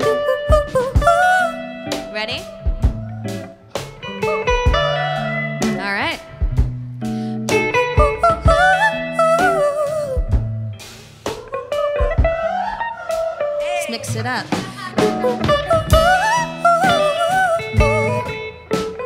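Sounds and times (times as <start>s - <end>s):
woman singing wordless runs: 0.0s - 1.6s
bass notes: 0.0s - 11.2s, 13.8s - 19.0s
electric guitar: 0.0s - 19.0s.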